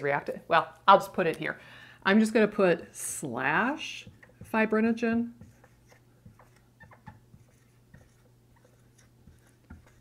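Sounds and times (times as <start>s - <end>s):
marker squeaking on whiteboard: 5.4s - 10.0s.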